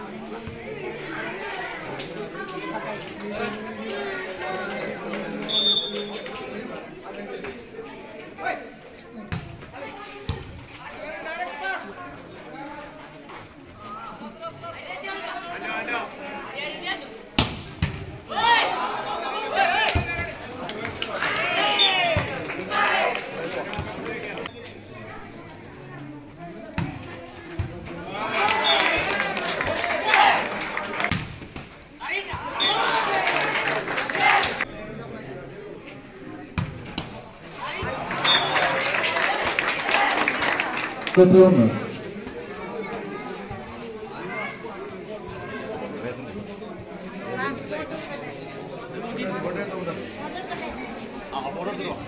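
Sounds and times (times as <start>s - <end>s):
voices chattering: 0.0s - 52.0s
loud shouting: 18.3s - 20.3s, 21.1s - 23.3s, 28.1s - 31.1s, 32.0s - 34.6s.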